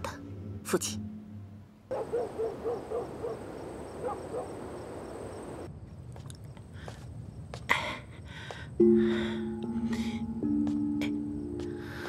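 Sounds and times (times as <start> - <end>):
high insect drone: 2.8 - 12.0.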